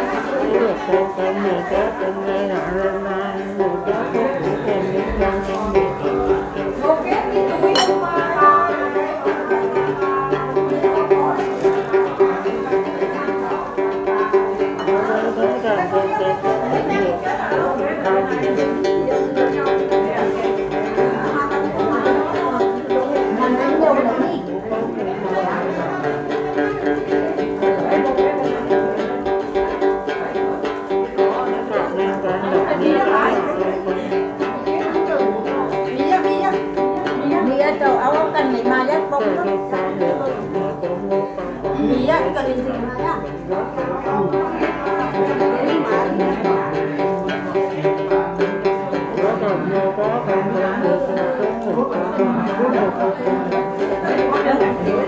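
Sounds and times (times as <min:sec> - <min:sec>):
man chanting: 0:00.0 - 0:06.6, 0:14.8 - 0:19.3, 0:39.2 - 0:47.5, 0:48.1 - 0:55.0
people chattering: 0:00.0 - 0:55.0
plucked lute notes: 0:00.0 - 0:55.0.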